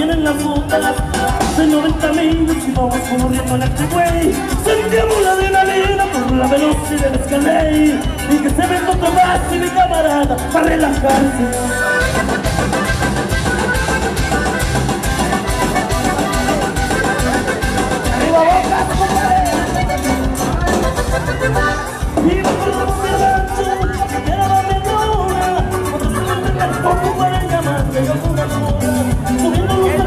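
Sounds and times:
live band playing instrumental music: 0.0 - 30.0.

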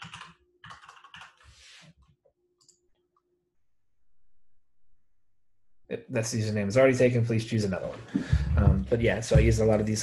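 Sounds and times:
fast typing on keyboard: 0.0 - 1.6.

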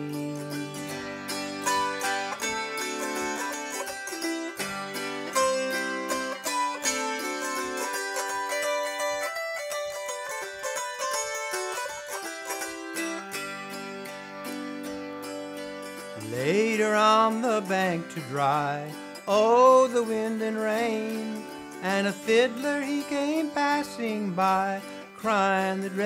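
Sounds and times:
autoharp playing: 0.0 - 26.0.

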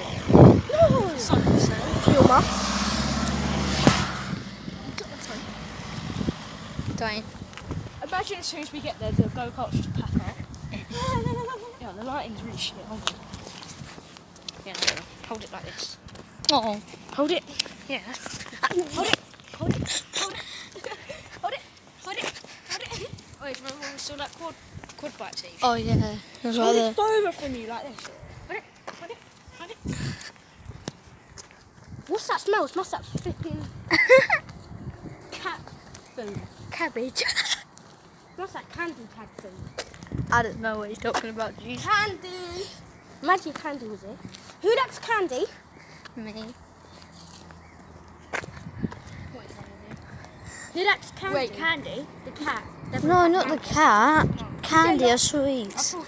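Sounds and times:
vehicle driving past: 0.0 - 7.4
boys talking: 0.0 - 30.9, 31.8 - 34.6, 35.2 - 47.0, 47.9 - 56.0.

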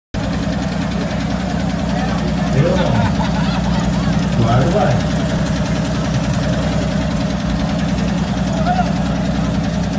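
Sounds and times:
car engine idling: 0.2 - 9.9.

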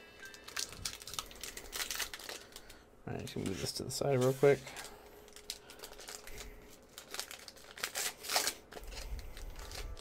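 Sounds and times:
foil wrapper crinkling and tearing: 0.3 - 10.0.

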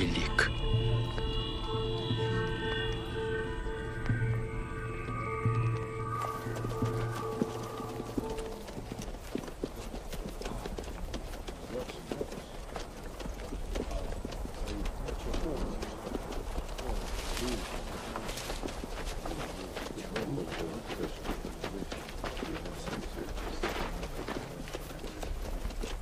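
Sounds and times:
orchestral drone: 0.0 - 9.1
horses' hooves clip-clopping: 0.0 - 26.0.

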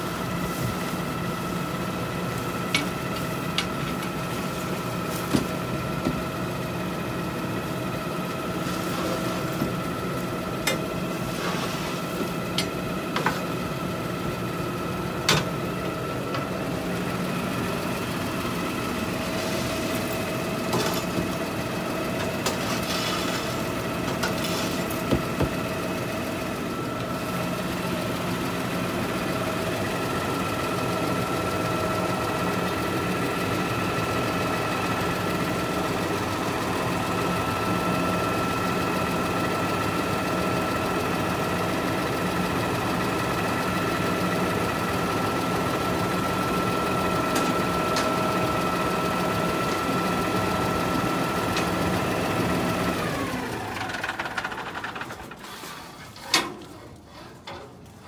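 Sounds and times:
garbage truck engine running: 0.0 - 58.0.

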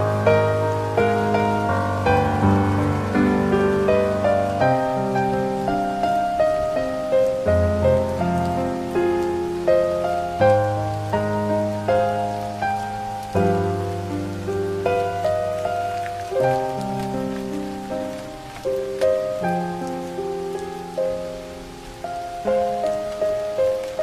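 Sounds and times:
rain falling: 0.0 - 24.0
soft piano music: 0.0 - 24.0.

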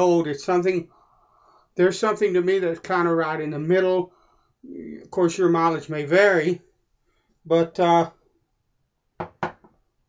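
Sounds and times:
knocks on hard surface: 9.2 - 9.8.

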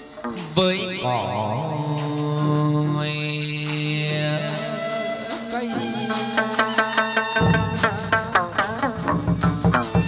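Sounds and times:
accompanying ritual music ensemble: 0.0 - 10.0.

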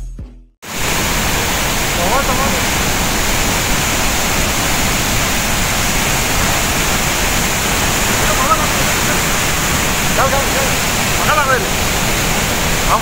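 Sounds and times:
waterfall rushing: 0.6 - 13.0.

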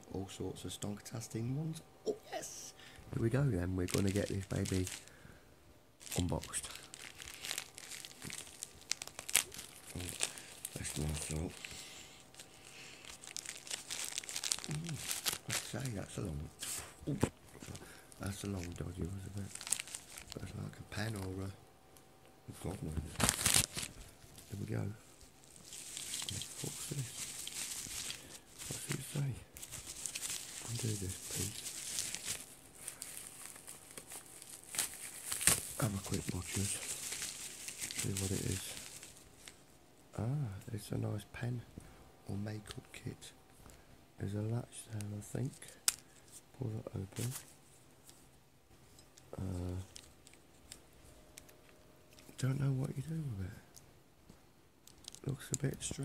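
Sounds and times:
plastic bag crinkling and tearing: 3.5 - 5.2, 6.0 - 16.9, 17.6 - 21.5, 22.9 - 39.6, 45.5 - 46.2, 49.4 - 50.8, 54.9 - 55.7.

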